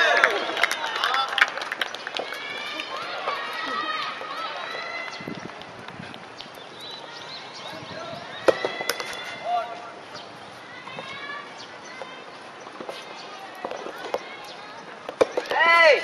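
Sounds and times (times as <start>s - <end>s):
distant voices calling and chatting: 0.3s - 16.0s.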